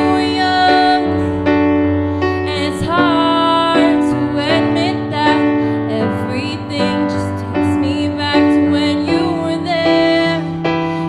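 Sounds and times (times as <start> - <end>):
piano chords: 0.0 - 11.0.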